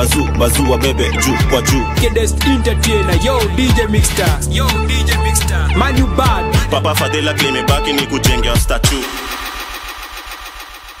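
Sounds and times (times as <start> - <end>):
pulsing engine-like rumble: 8.9 - 11.0.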